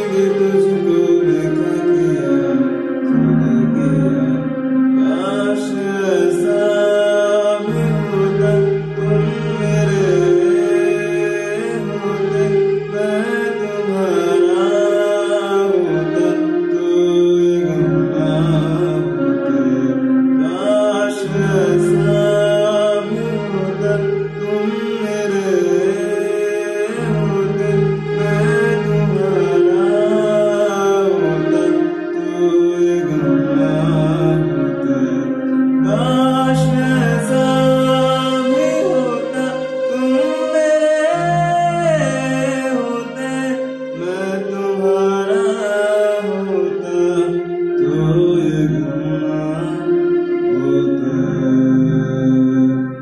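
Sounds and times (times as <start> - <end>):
man singing a slow ballad: 0.0 - 52.9
electronic keyboard chords: 0.0 - 53.0.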